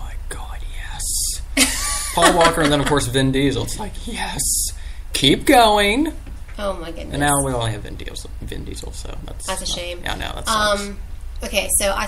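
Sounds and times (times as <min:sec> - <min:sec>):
person whispering: 0:00.0 - 0:01.4.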